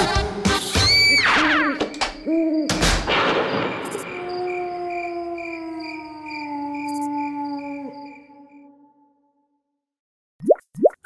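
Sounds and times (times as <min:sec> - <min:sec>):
cricket chirps: 0:01.0 - 0:09.4
owl-like hoot: 0:01.2 - 0:03.0.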